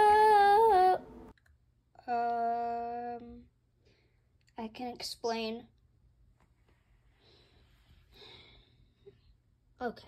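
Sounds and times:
faint breaths: 0:06.9 - 0:09.4.

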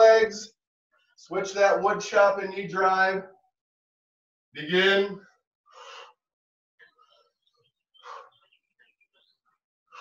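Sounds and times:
faint breathing: 0:05.7 - 0:06.3, 0:08.0 - 0:08.6.

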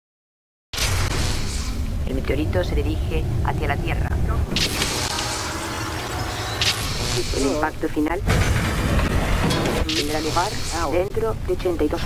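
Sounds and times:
bright hissing wash: 0:00.8 - 0:02.1
deep rumble: 0:00.9 - 0:12.0.

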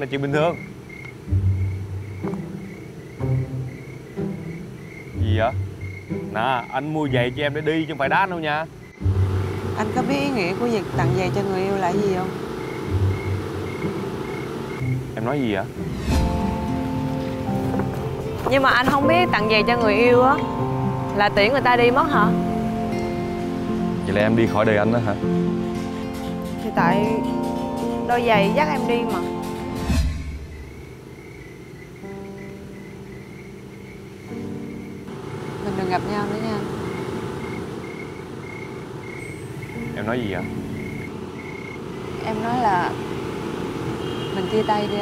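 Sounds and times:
background music steady chords: 0:00.0 - 0:45.0
crickets chirping: 0:00.0 - 0:45.0.

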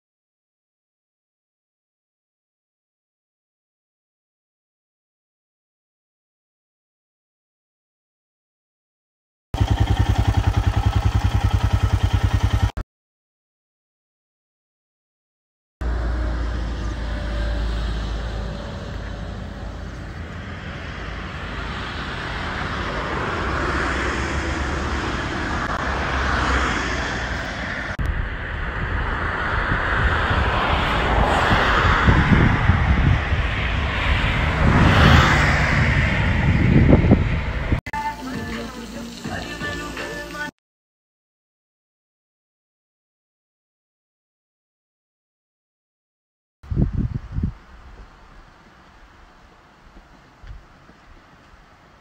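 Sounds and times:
motorcycle engine: 0:09.6 - 0:12.8
road noise: 0:09.6 - 0:12.8, 0:15.8 - 0:40.5, 0:46.7 - 0:52.0
wind buffeting microphone: 0:27.6 - 0:37.8, 0:46.7 - 0:48.5.

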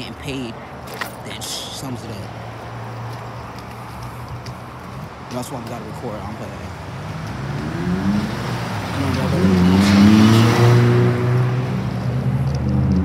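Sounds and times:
car accelerating past: 0:07.2 - 0:13.0.

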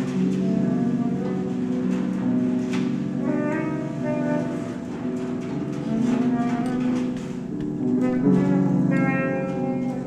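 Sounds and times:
bowed cello: 0:00.0 - 0:10.0
double bass: 0:00.0 - 0:10.0
woodwind: 0:00.0 - 0:10.0.

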